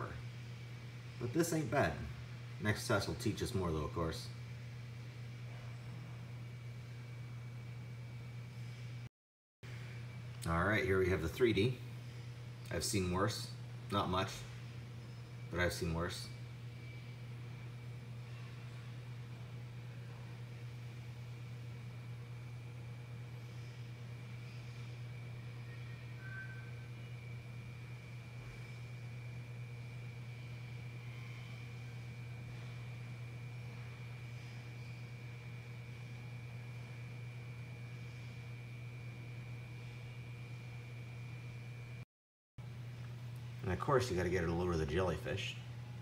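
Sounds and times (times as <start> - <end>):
thin high whine: 0.0 - 9.1, 9.7 - 42.0
low machine hum: 0.0 - 42.0, 42.6 - 46.0.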